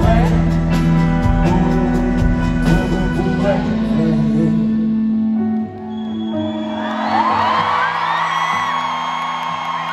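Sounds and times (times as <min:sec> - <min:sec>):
live concert music: 0:00.0 - 0:09.9
crowd whooping and screaming: 0:05.8 - 0:09.9.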